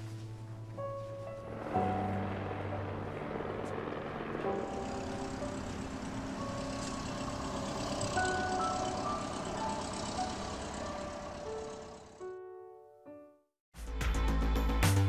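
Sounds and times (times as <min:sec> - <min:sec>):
soft film score: 0:00.0 - 0:13.4
jet engine roar: 0:01.5 - 0:11.6.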